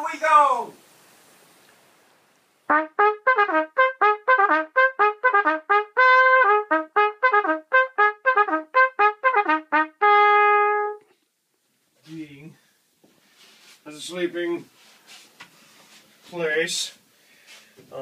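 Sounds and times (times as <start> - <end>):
bugle call: 2.7 - 11.0.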